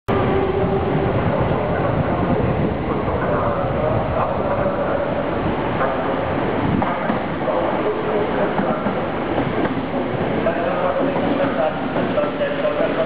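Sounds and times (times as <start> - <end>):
train rumbling on rails: 0.1 - 13.0.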